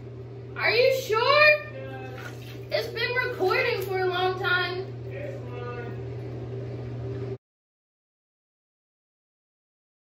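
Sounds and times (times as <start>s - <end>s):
steady low hum: 0.0s - 7.4s.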